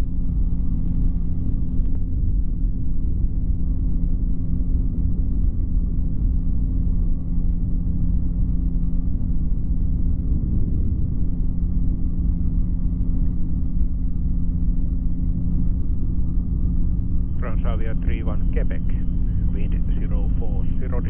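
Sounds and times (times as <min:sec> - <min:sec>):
deep rumble: 0:00.0 - 0:21.0
microlight engine droning: 0:00.0 - 0:21.0.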